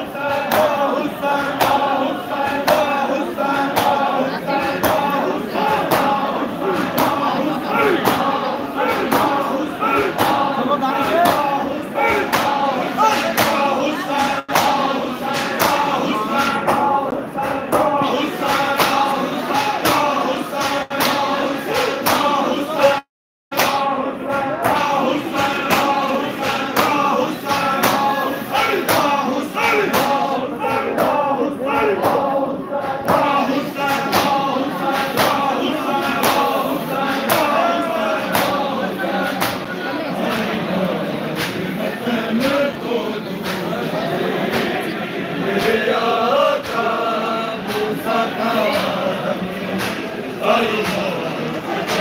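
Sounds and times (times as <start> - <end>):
crowd of men chanting: 0.0 - 52.0
rhythmic chest-beating: 0.0 - 52.0.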